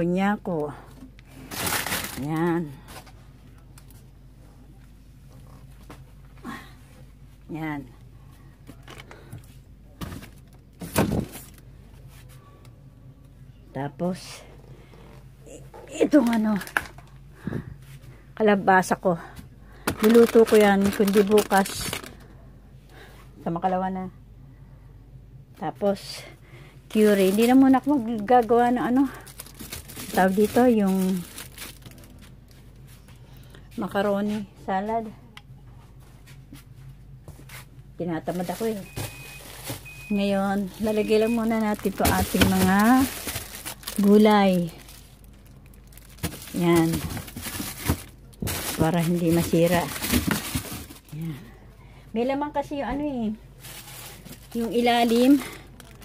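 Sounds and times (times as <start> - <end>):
refrigerator hum: 0.0 - 56.0.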